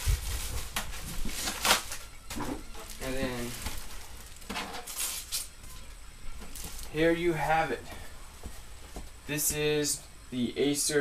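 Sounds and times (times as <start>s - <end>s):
packaging rustling and sliding: 0.0s - 5.5s.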